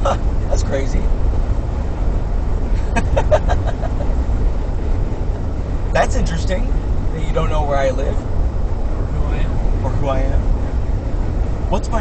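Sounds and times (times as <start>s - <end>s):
road and engine rumble in car cabin: 0.0s - 12.0s.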